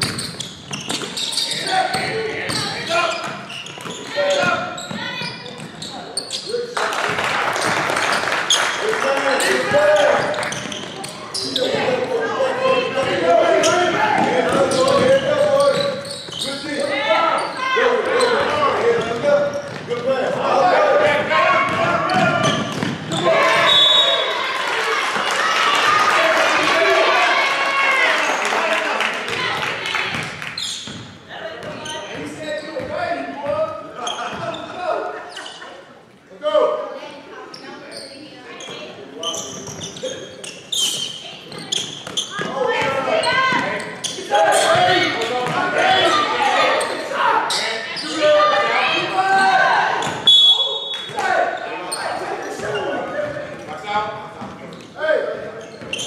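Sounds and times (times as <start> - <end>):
people calling out: 41.6 - 53.0.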